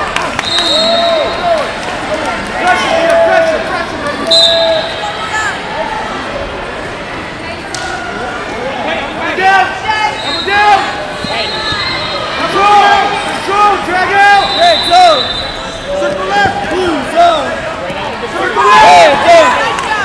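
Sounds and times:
people shouting in a hall: 18.3s - 20.0s.

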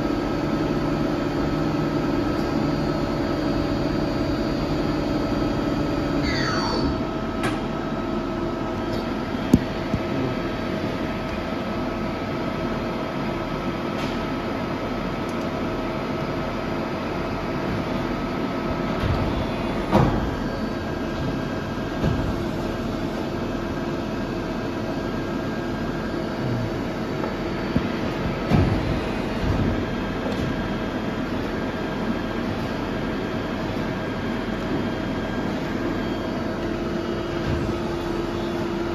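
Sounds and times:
machine hum: 0.0s - 13.8s, 14.4s - 38.9s.

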